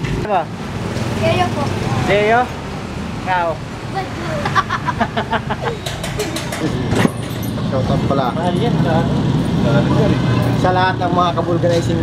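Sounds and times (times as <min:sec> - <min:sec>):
street traffic: 0:00.0 - 0:12.0
boy laughing: 0:04.0 - 0:07.0.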